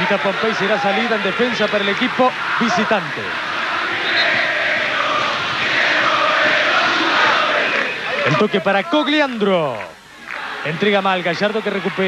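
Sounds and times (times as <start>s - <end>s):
stadium crowd chanting: 0.0s - 8.6s, 10.2s - 12.0s.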